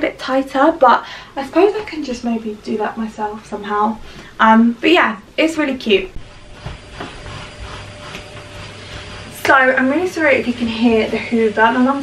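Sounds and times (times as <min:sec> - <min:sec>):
vacuum cleaner running: 0:05.4 - 0:12.0.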